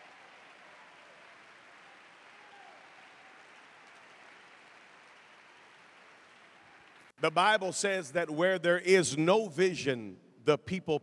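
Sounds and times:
faint audience applause: 0:00.0 - 0:07.4.

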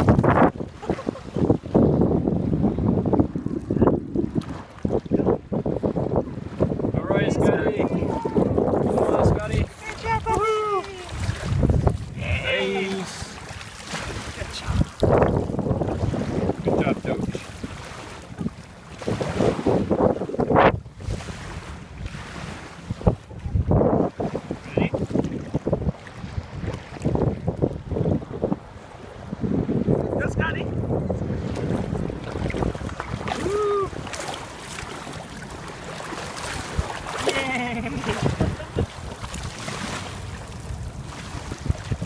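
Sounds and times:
water splashing: 0:00.0 - 0:05.3, 0:07.4 - 0:29.4, 0:31.2 - 0:42.0
wind buffeting microphone: 0:00.0 - 0:42.0.

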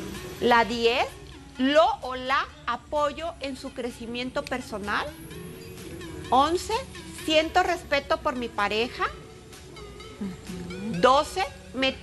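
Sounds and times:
soft background music: 0:00.0 - 0:12.0
person murmuring mm-hmm: 0:10.1 - 0:11.0.

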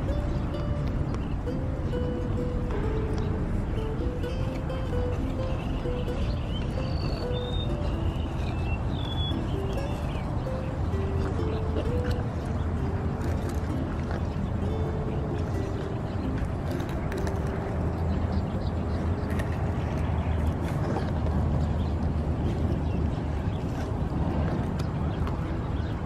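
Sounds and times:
stepped melody notes: 0:00.0 - 0:19.5
steady low drone: 0:00.0 - 0:26.0.

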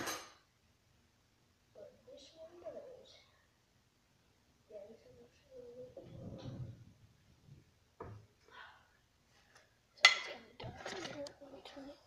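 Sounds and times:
child murmuring: 0:04.7 - 0:06.7.

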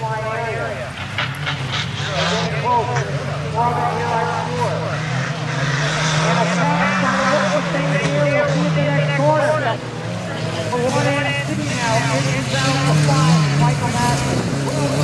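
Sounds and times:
pickup truck engines racing: 0:00.0 - 0:15.0.

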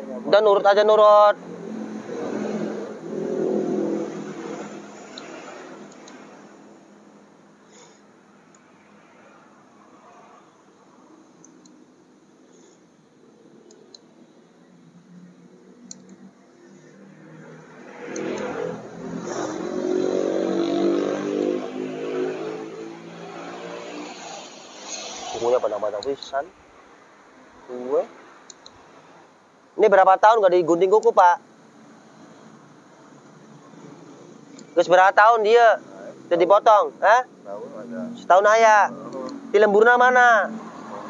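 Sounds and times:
vehicle engine passing: 0:00.0 - 0:11.2, 0:15.1 - 0:26.5, 0:37.4 - 0:41.0.

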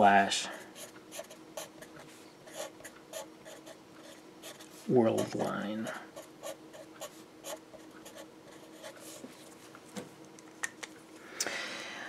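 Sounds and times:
marker writing on paper: 0:00.8 - 0:09.1.

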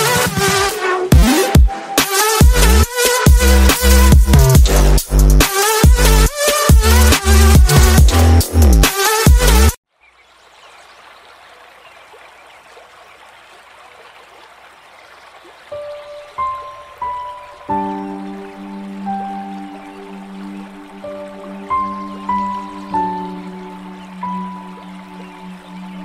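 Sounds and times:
instrumental song melody: 0:00.0 - 0:09.8, 0:15.8 - 0:26.0.

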